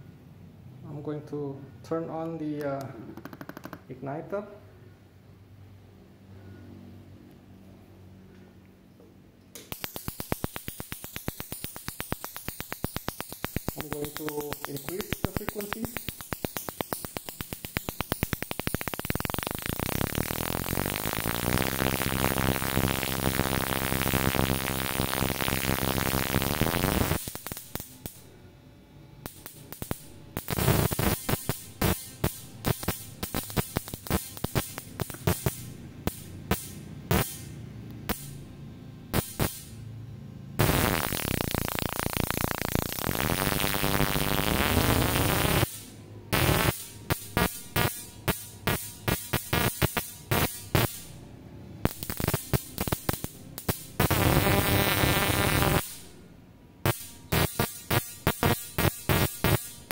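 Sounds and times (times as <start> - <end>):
ignition coil spark buzzing and snapping: 9.5 - 28.3, 29.2 - 39.9, 40.6 - 51.2, 51.8 - 56.2, 56.8 - 59.9.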